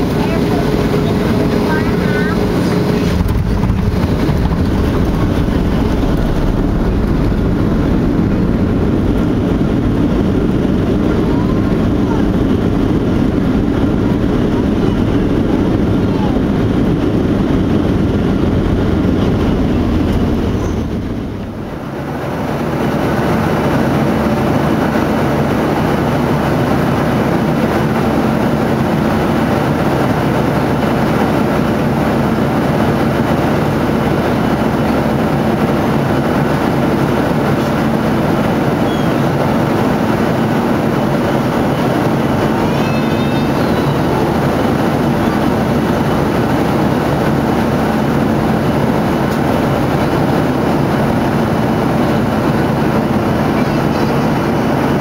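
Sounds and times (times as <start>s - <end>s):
jet engines and airflow hum: 0.0s - 55.0s
plane rumbling along runway: 0.0s - 55.0s.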